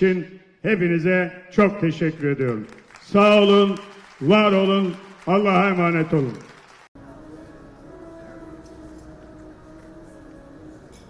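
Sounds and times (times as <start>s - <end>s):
soft background music: 7.0s - 11.0s.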